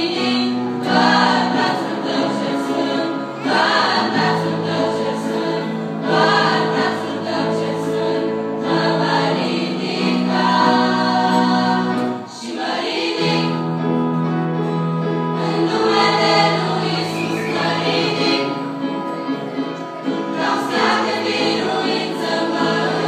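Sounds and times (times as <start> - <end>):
girls' choir singing: 0.0 - 14.0, 15.4 - 23.0.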